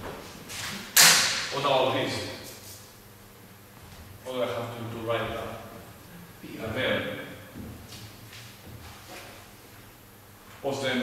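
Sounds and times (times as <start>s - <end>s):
loud sharp smack: 1.0s - 1.5s.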